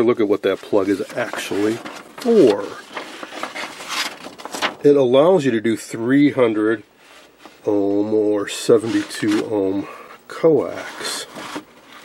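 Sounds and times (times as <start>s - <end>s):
paper pages rustling: 0.3s - 5.0s, 8.7s - 9.8s, 10.6s - 12.0s.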